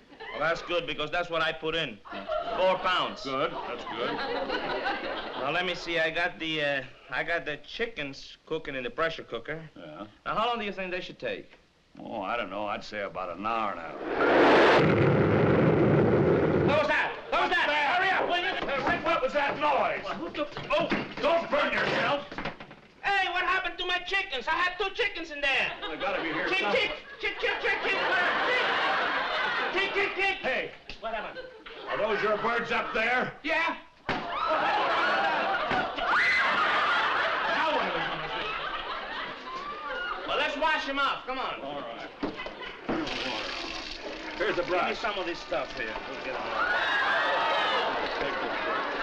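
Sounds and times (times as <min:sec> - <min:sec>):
audience laughing: 0:02.1 - 0:05.6, 0:25.7 - 0:30.2, 0:34.4 - 0:40.4, 0:46.1 - 0:49.0
hissing: 0:13.7 - 0:17.2
low rumble: 0:13.9 - 0:16.8
pressure cooker explosion: 0:14.1 - 0:17.0.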